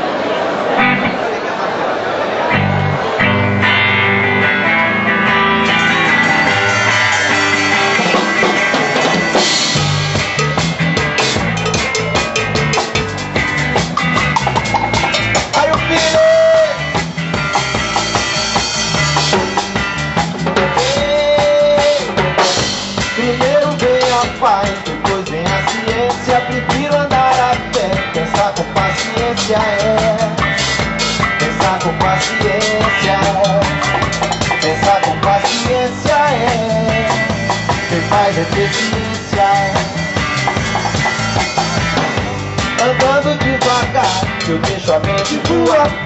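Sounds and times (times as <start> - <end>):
live reggae band: 0.0 - 46.0
electric guitar: 0.7 - 1.3, 2.4 - 46.0
drum kit: 2.5 - 46.0.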